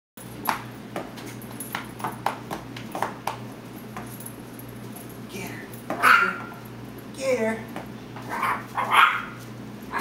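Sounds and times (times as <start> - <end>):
puppy yipping: 8.3 - 10.0.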